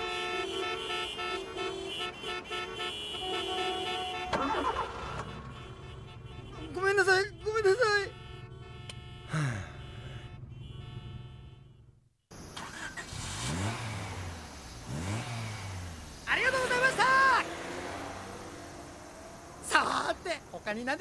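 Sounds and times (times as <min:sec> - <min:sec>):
car engine hum inside cabin: 0:12.4 - 0:20.8
vehicle engine note rising and falling: 0:12.7 - 0:20.6.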